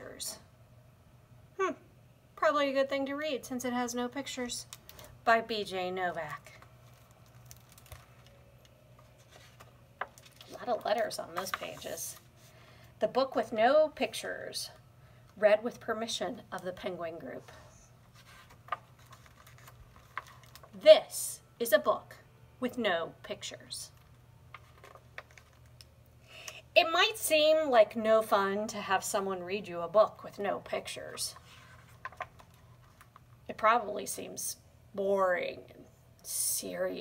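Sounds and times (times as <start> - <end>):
woman speaking: 0.0 - 0.5, 2.4 - 6.6, 10.5 - 12.2, 13.0 - 14.8, 15.4 - 17.8, 20.8 - 24.0, 26.7 - 31.4, 33.5 - 37.0
low room hum: 0.0 - 37.0
hardcover book being opened: 6.3 - 12.4, 18.0 - 20.8, 24.5 - 25.8, 31.4 - 33.2.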